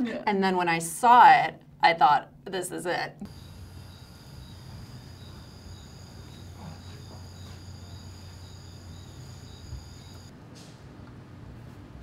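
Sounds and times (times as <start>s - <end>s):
crickets chirping: 3.3s - 10.3s.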